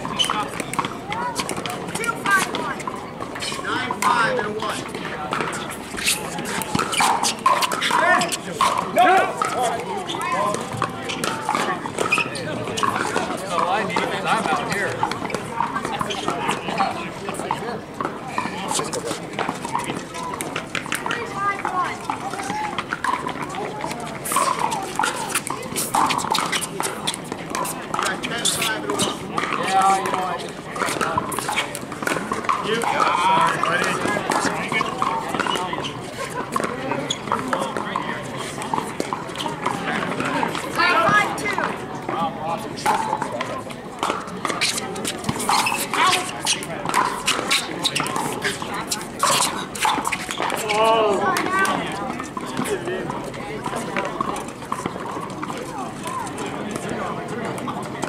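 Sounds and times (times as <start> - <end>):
players talking and calling: 0.0 - 58.0.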